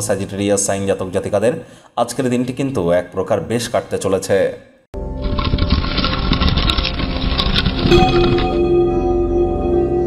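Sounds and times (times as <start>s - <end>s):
clear ringing tone: 7.9s - 10.0s.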